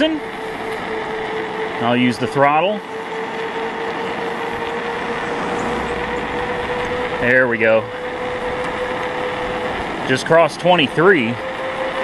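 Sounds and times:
electric motor whine: 0.0s - 12.0s
rushing noise of riding: 0.0s - 12.0s.

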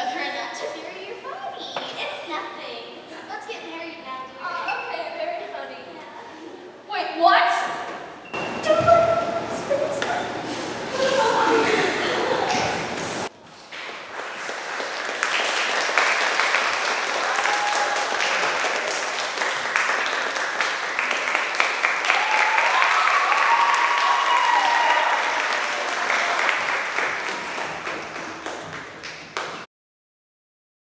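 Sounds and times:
audience applauding and cheering: 10.9s - 29.7s
whoops: 17.2s - 18.2s, 22.0s - 26.5s.

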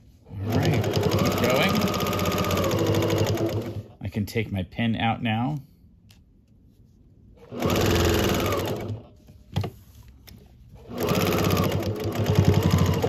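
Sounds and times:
sewing machine stitching: 0.3s - 4.0s, 7.4s - 9.1s, 10.8s - 13.0s.

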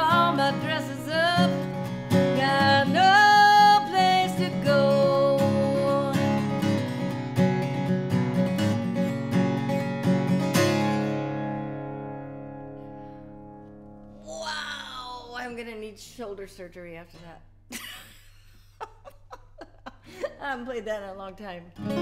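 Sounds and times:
woman singing: 0.0s - 6.4s
acoustic guitar strumming: 0.0s - 14.3s, 21.8s - 22.0s.

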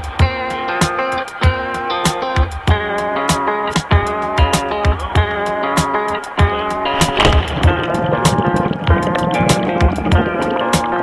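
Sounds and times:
steady drum beat: 3.8s - 10.3s.

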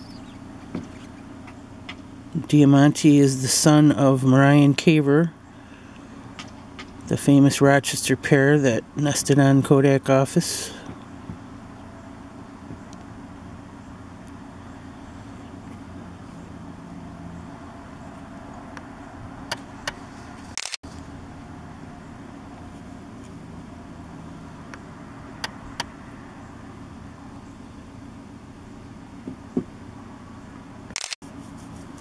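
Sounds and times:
vehicle engine idling: 0.0s - 32.0s
sharp clicks: 19.4s - 20.8s, 30.9s - 31.2s.

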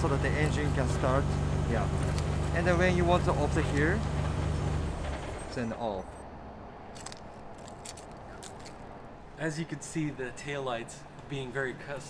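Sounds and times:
steady background noise: 0.0s - 12.0s
light clicks and rustles: 6.9s - 8.9s.

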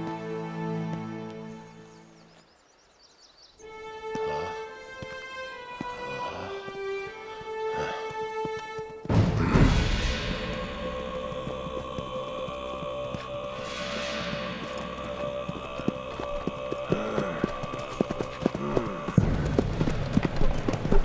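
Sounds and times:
orchestral music: 0.0s - 1.9s, 3.6s - 21.0s
horses hooves clip-clopping: 0.0s - 2.5s, 3.8s - 9.3s, 11.0s - 21.0s.

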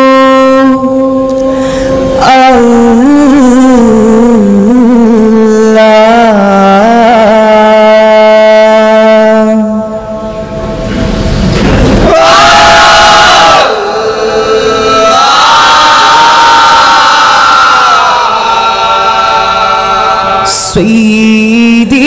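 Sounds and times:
men singing devotional chant: 18.8s - 22.0s.

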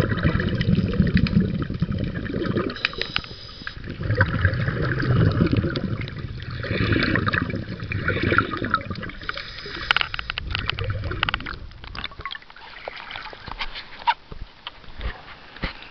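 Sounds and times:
muffled underwater bubbling and sloshing: 0.0s - 15.9s
sharp underwater clicks: 2.6s - 12.6s.

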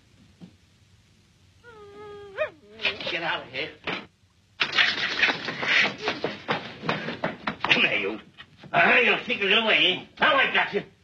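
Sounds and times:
cat meowing: 1.7s - 3.1s.

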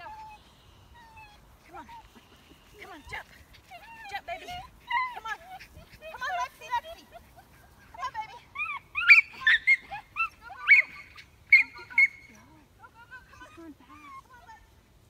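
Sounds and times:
small dog yipping: 8.5s - 12.4s.

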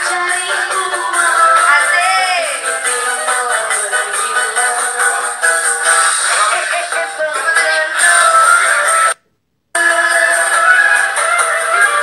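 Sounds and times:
woman singing karaoke: 0.0s - 5.7s, 6.3s - 9.2s, 9.8s - 12.0s
backing track music: 0.0s - 9.2s, 9.8s - 12.0s.

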